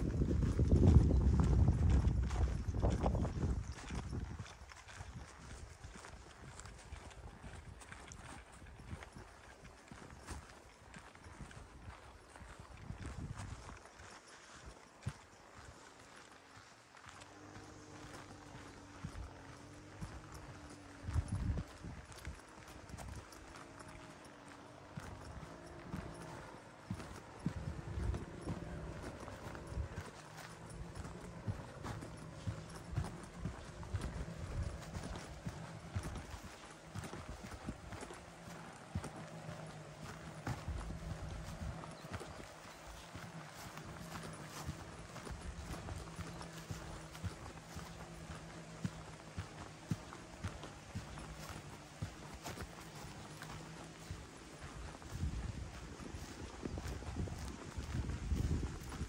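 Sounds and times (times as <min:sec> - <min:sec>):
footsteps on grass and dirt: 0:00.0 - 0:59.0
faint low hum: 0:14.6 - 0:58.9.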